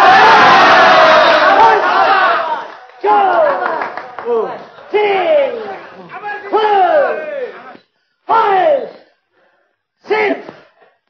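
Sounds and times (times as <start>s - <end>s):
loud human cry falling in pitch: 0.0s - 3.6s.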